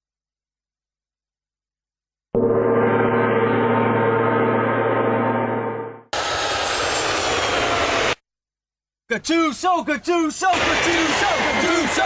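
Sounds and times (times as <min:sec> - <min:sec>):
jet engines roaring: 0:02.9 - 0:08.2, 0:10.5 - 0:12.0.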